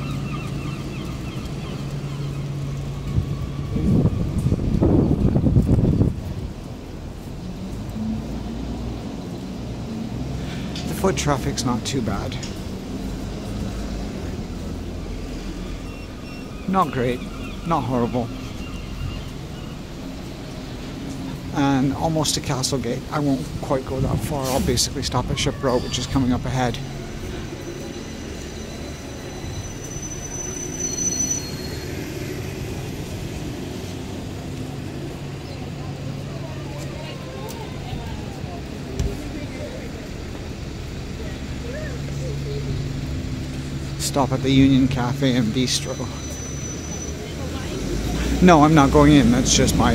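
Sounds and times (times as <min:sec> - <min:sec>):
buses idling: 0:00.0 - 0:49.9
low rumble of street traffic: 0:00.0 - 0:49.9
brief high squeal: 0:27.4 - 0:32.0, 0:46.0 - 0:47.2.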